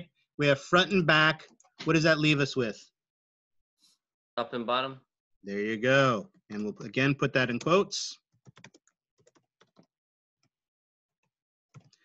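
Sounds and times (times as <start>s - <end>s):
typing on keyboard: 8.4s - 9.9s.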